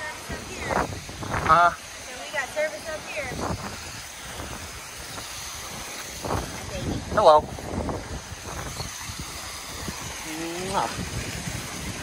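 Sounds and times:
cascading stream: 0:00.0 - 0:12.0
waterfall rushing: 0:00.0 - 0:12.0.

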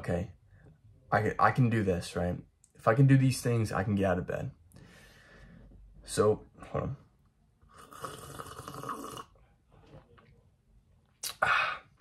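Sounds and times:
person slurping coffee: 0:07.7 - 0:09.4.

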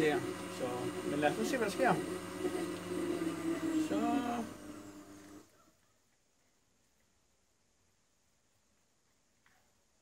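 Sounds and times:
blender motor humming: 0:00.0 - 0:05.5.

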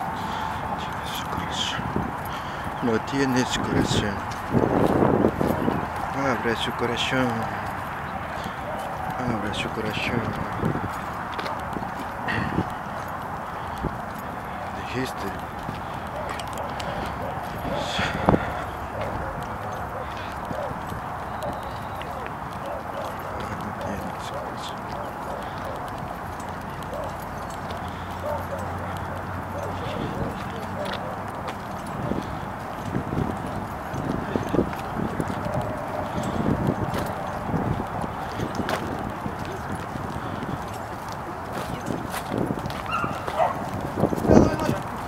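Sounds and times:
faint voices: 0:00.0 - 0:45.0
footsteps on pavement and grass: 0:00.0 - 0:45.0
outdoor background noise: 0:00.0 - 0:45.0.

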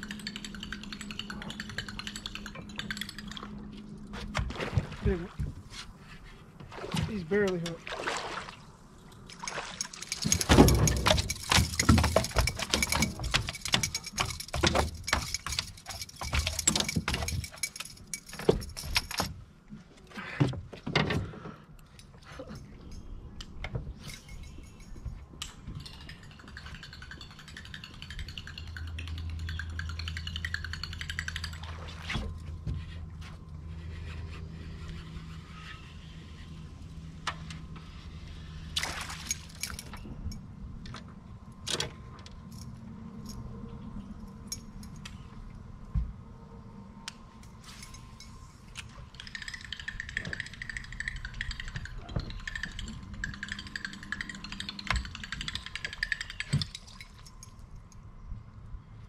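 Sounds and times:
fishing tackle clicks and rattles: 0:00.0 - 0:03.7, 0:09.2 - 0:19.4, 0:23.9 - 0:31.8, 0:38.8 - 0:43.4, 0:47.5 - 0:58.0.

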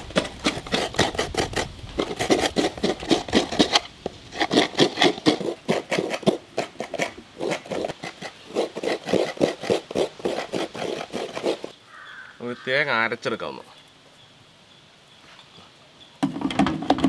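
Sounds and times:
coconut scraping on a grater: 0:00.0 - 0:11.7.

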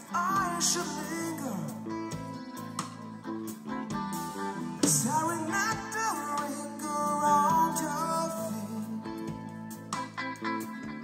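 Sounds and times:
live band instrumental: 0:00.0 - 0:11.0
person singing: 0:00.0 - 0:11.0.

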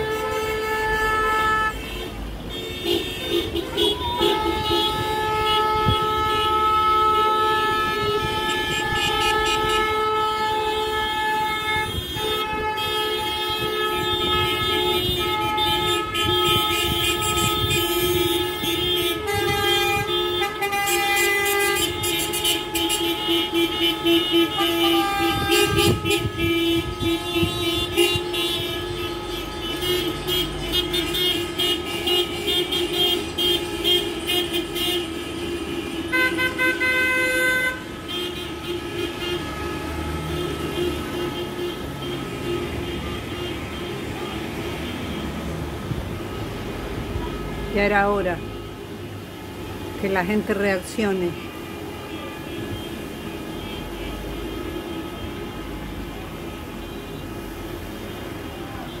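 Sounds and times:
car horns honking: 0:00.0 - 0:59.0
passing traffic: 0:00.0 - 0:59.0.

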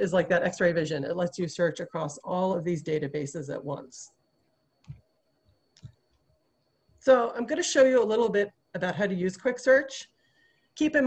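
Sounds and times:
computer mouse clicks: 0:04.4 - 0:05.1, 0:05.7 - 0:06.3.

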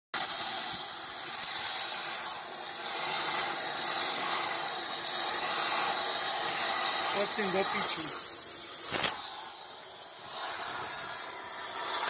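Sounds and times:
gas torch hissing: 0:00.1 - 0:12.0.

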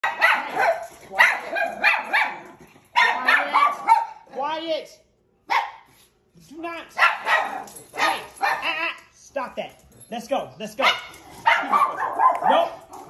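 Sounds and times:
dogs barking excitedly: 0:00.0 - 0:04.3, 0:05.4 - 0:06.0, 0:06.9 - 0:08.8, 0:10.8 - 0:13.0.

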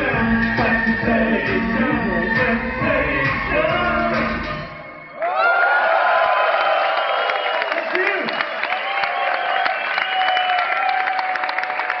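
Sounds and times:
audience clapping and cheering: 0:05.0 - 0:12.0.

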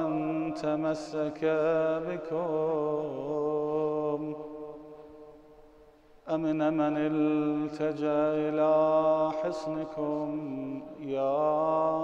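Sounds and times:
man chanting melodically: 0:00.0 - 0:04.9, 0:06.3 - 0:12.0.

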